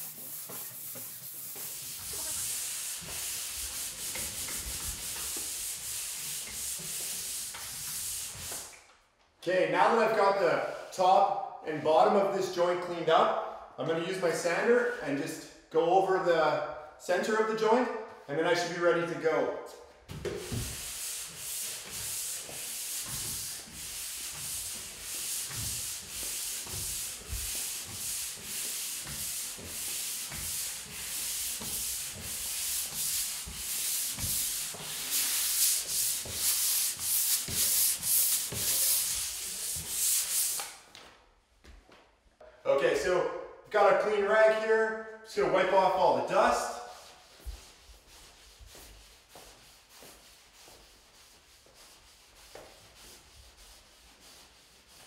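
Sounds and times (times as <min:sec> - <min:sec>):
pole sander rubbing drywall: 0:00.0 - 0:08.6, 0:20.3 - 0:40.7.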